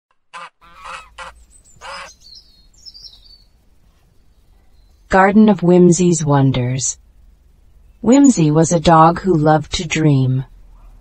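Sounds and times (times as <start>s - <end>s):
honking bird calls: 0.3s - 3.6s
faint high bird chirps: 0.6s - 5.3s, 7.6s - 8.5s.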